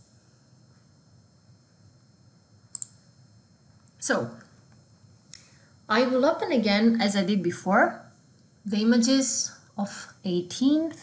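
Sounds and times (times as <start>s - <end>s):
computer mouse button clicks: 2.7s - 3.0s.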